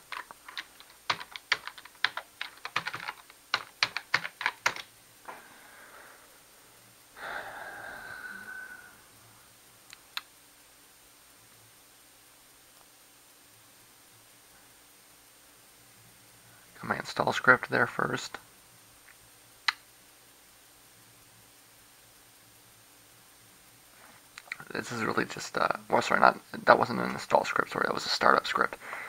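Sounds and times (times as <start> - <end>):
faint low hum: 0.0 - 29.0
computer keyboard key clicks: 0.1 - 4.9.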